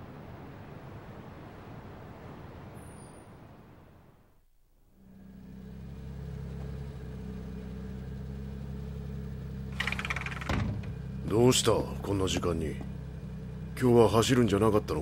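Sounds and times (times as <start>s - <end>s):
car engine idling: 5.0s - 15.0s.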